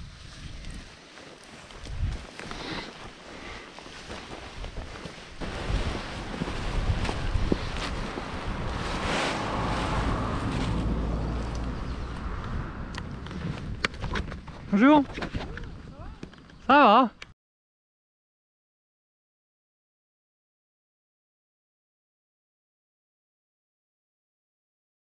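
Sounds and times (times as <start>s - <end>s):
paraglider wing rustling: 0.0s - 16.0s
rushing rumble: 5.4s - 14.8s.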